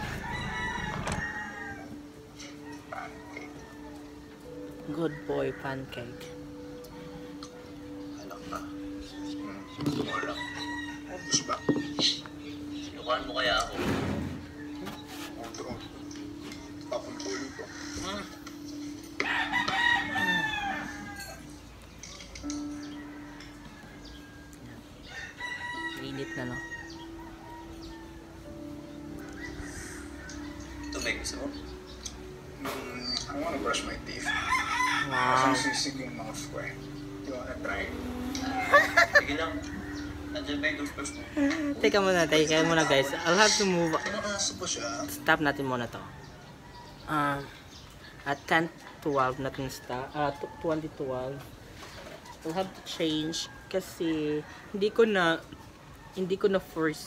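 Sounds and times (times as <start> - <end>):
rooster crowing: 0.0 - 6.3, 9.4 - 12.3, 19.2 - 21.6, 22.5 - 31.7, 33.4 - 45.1.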